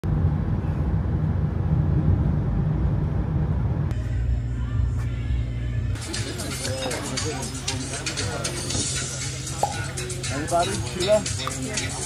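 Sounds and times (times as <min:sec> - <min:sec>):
moving car rumble: 0:00.0 - 0:06.1.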